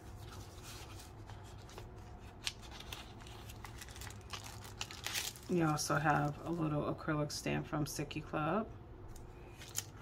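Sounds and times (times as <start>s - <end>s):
plastic bag crinkling and clicking: 2.5s - 6.6s.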